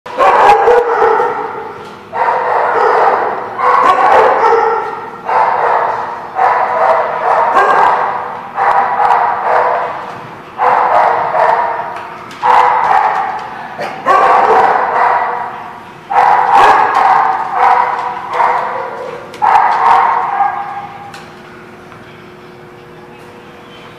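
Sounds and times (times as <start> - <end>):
dog barking loudly: 0.1 - 21.1.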